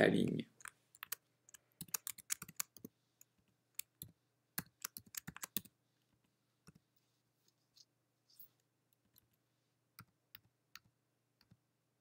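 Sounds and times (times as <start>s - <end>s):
keyboard typing: 0.6s - 5.8s.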